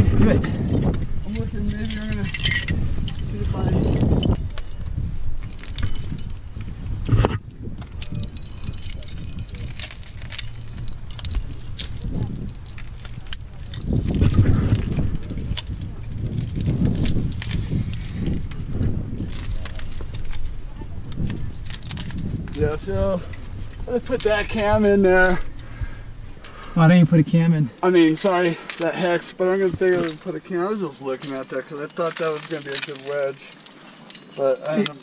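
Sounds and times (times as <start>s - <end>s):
rustling against rock: 0.4s - 27.2s, 27.8s - 35.0s
metal climbing gear jangling: 0.4s - 35.0s.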